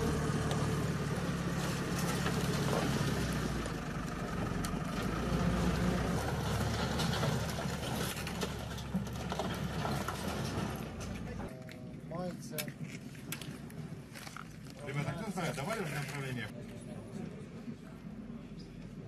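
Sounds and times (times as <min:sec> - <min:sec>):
diesel engine running: 0:00.0 - 0:11.5.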